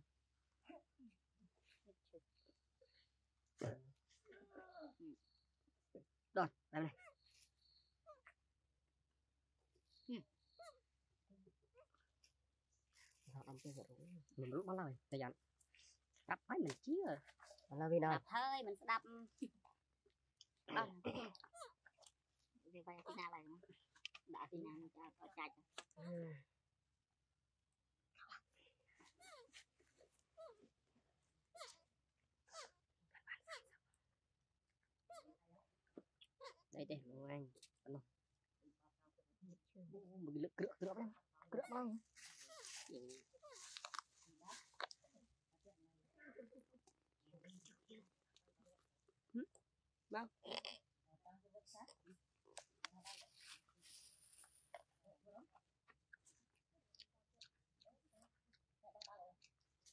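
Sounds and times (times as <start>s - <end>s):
young monkey squeaking: 29.2s - 29.5s, 31.6s - 31.8s.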